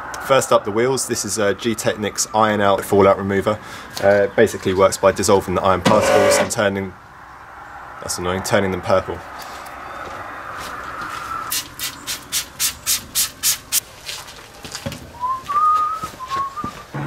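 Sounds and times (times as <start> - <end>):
spray bottle hissing sprays: 11.5 - 13.8.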